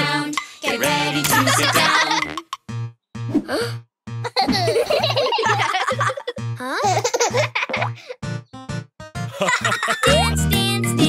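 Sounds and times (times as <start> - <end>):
upbeat children's song: 0.0 - 2.5, 9.3 - 11.0
cartoon children laughing: 1.3 - 2.5, 4.2 - 8.1, 9.3 - 10.4.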